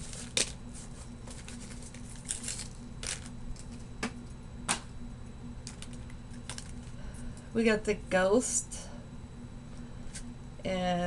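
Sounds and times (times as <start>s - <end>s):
plastic bag rustling: 0.0s - 3.8s
low hum: 0.0s - 11.0s.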